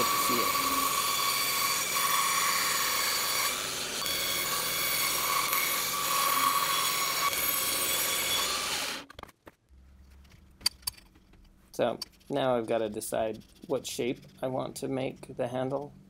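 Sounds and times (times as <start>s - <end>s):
bandsaw cutting resin: 0.0s - 9.1s.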